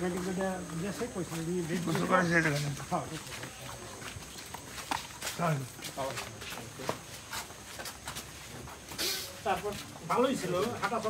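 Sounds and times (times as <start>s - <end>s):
footsteps and scuffs: 0.0s - 11.0s.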